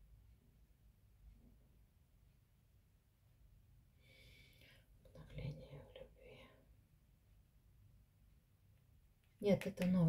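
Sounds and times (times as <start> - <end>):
woman whispering: 5.1 - 6.7.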